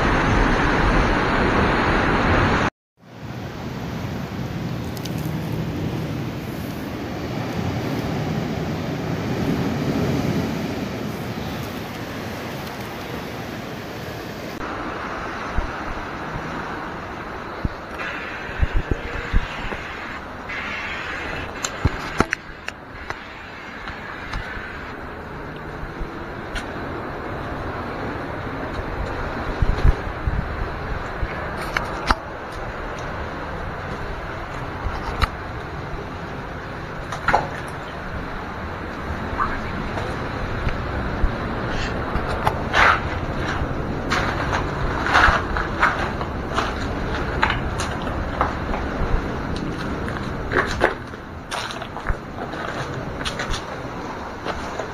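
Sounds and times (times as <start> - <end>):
surf rushing: 0.0 - 54.9
wind buffeting microphone: 14.5 - 54.9
footsteps on rocks: 42.2 - 54.9.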